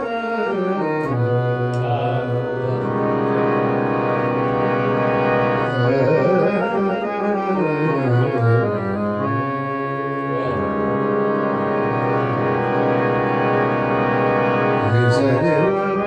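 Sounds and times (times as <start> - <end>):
man singing: 0.0 - 3.5, 9.6 - 12.0, 14.8 - 16.0
harmonium chords: 0.0 - 16.0.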